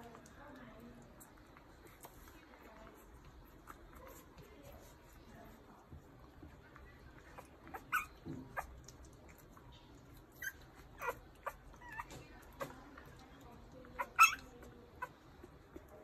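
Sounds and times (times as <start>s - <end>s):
puppy whimpering and squeaking: 7.2s - 9.2s, 10.0s - 12.8s, 13.9s - 15.6s.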